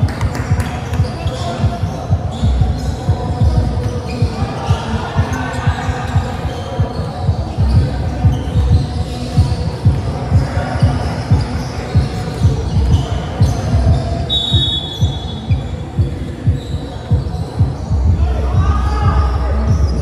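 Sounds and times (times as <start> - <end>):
basketballs bouncing on gym floor: 0.0 - 5.4, 6.1 - 18.7
voices in a hall: 0.0 - 20.0.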